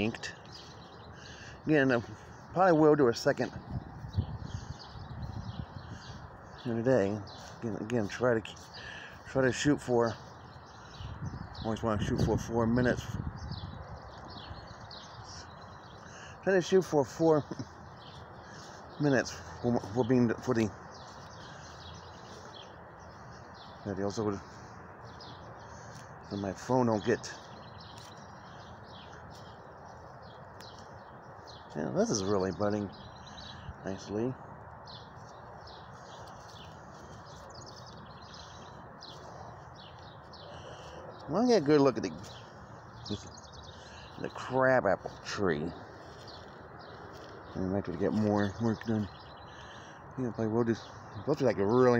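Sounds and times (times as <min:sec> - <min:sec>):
songbirds chirping: 0:00.0 - 0:51.9.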